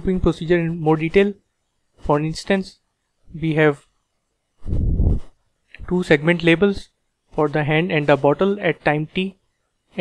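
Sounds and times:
man speaking: 0.0s - 1.4s, 2.0s - 3.9s, 5.8s - 9.4s.

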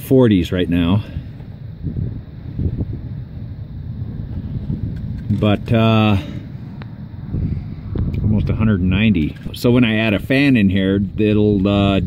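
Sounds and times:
wind buffeting microphone: 1.0s - 12.0s.

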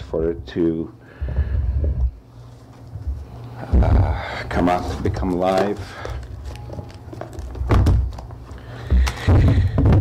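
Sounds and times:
papers handled near microphone: 4.5s - 9.3s
booklet thumping on table: 6.5s - 8.3s.

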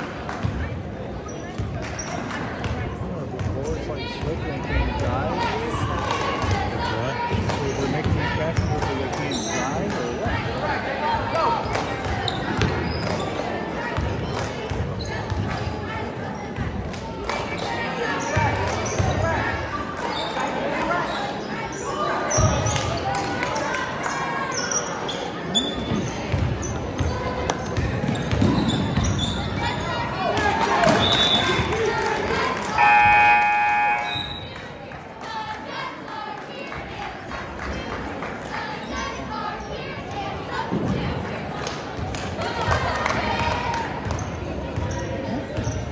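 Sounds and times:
voices of players and spectators: 0.0s - 45.9s
sneaker squeaks: 1.2s - 2.3s, 7.2s - 9.8s, 12.2s - 13.4s, 20.0s - 22.8s, 24.5s - 30.0s, 32.8s - 34.6s, 44.1s - 45.9s
scoreboard horn buzzing: 32.8s - 34.4s.

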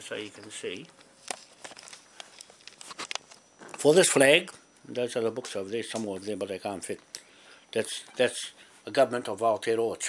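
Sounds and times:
camera handling rustling: 1.2s - 3.8s.

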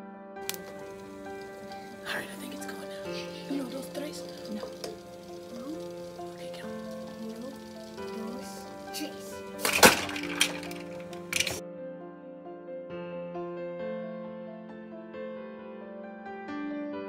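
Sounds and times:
piano music: 0.0s - 17.0s
metallic cracks of can crushing: 0.4s - 2.1s, 2.9s - 11.6s.

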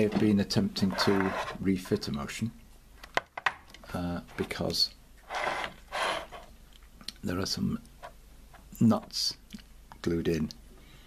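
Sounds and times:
plastic scraping on wooden table: 0.0s - 1.6s, 5.3s - 6.5s.

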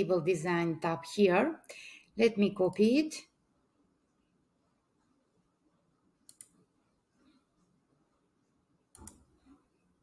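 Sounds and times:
computer mouse clicks: 6.2s - 6.6s, 8.9s - 9.6s.

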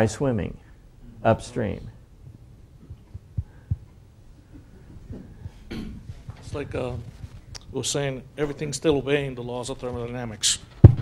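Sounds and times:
soft low thumps: 2.2s - 9.0s.

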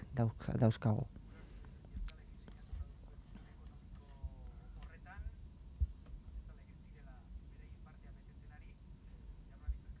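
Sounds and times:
faint distant speech: 1.8s - 5.5s.

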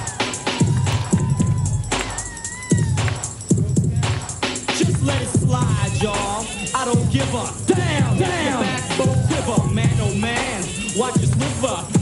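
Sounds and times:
hip hop drum beat: 0.0s - 12.0s.

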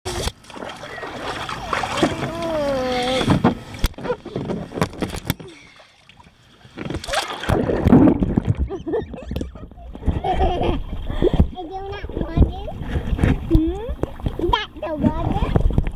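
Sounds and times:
water splashing in a pool: 0.1s - 15.9s.

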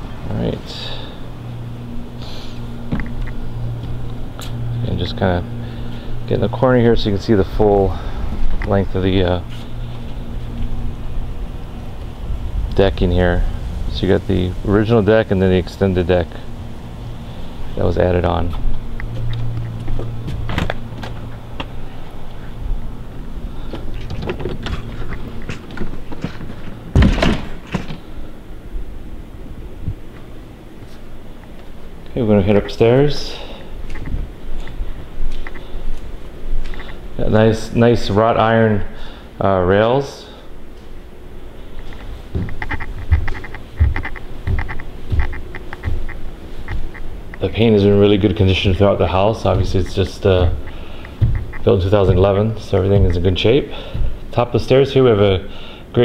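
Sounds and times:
machine hum: 0.0s - 56.0s
door opening and shutting: 20.3s - 21.7s, 23.7s - 28.0s, 41.9s - 47.1s, 49.4s - 54.3s
loud thump: 26.9s - 27.6s, 51.2s - 52.2s
knocks and clicks: 41.8s - 47.4s, 49.5s - 53.2s.

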